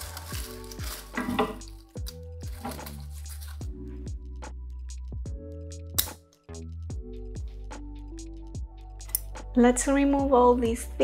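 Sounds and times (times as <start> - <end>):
dry leaves and soil rustling: 0.0 - 3.7.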